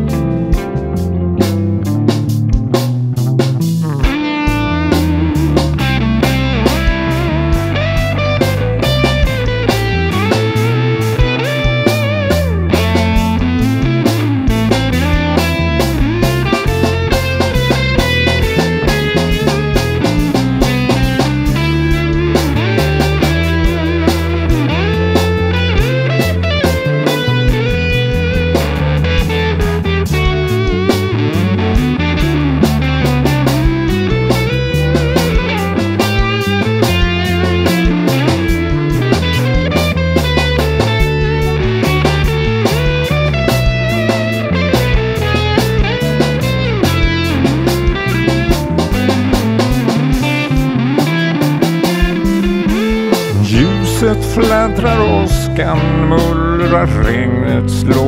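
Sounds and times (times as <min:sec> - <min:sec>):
bass guitar: 0:00.0 - 0:58.0
guitar melodic line: 0:00.0 - 0:58.0
steady drum beat: 0:00.0 - 0:58.0.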